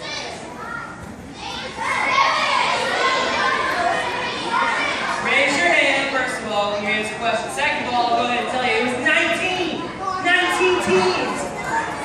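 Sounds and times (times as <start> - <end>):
crowd of children talking: 0.0 - 12.0.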